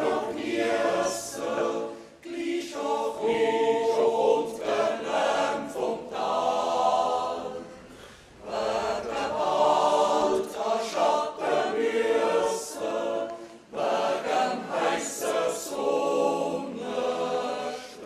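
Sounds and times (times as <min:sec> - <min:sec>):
choir singing sustained chords: 0:00.0 - 0:18.0.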